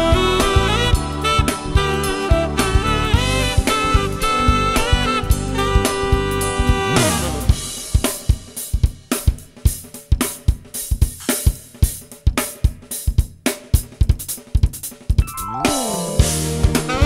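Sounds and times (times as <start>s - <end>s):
drum kit playing a beat: 0.0s - 17.0s.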